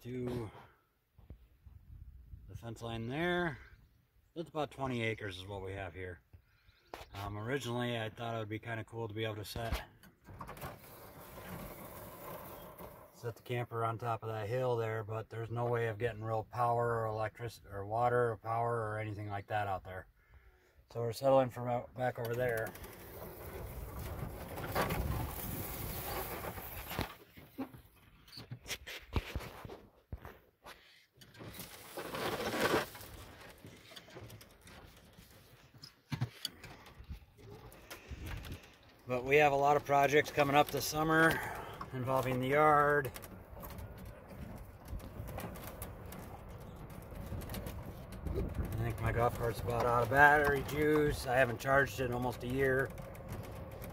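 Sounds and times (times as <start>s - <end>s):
golf cart rushing noise: 10.5s - 13.2s, 22.2s - 27.0s, 39.1s - 53.9s
wind on microphone: 47.3s - 49.1s.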